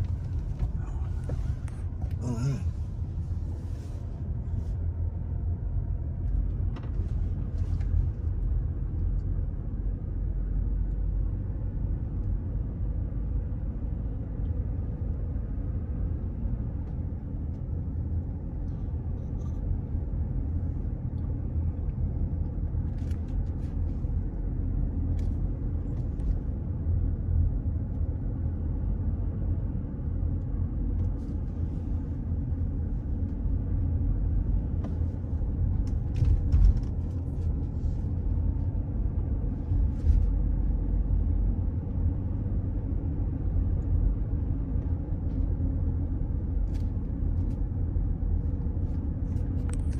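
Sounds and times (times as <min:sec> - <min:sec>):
car engine and tyres rumbling: 0:00.0 - 0:49.9.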